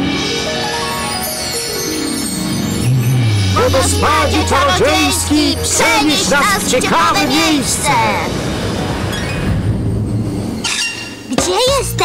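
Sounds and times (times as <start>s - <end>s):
wavering warbling tone: 3.2s - 8.5s.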